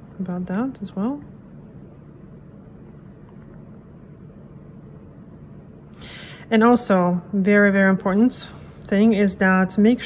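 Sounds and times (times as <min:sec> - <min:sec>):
low room noise hum: 0:00.0 - 0:10.0.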